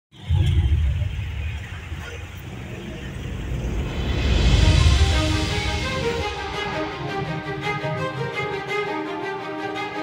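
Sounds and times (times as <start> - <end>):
loud low rumble: 0.2 - 8.0.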